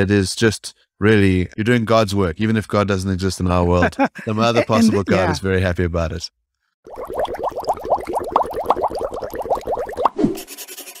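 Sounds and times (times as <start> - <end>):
rising bubbly blips: 6.9 - 10.4.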